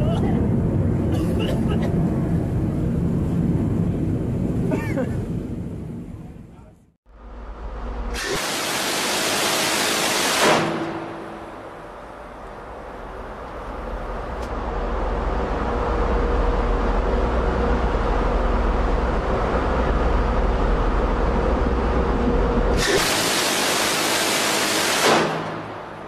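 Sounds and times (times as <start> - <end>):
wind rumble: 0.0 - 8.2, 11.0 - 22.8
rotary cannon firing: 8.1 - 11.4, 22.8 - 26.0.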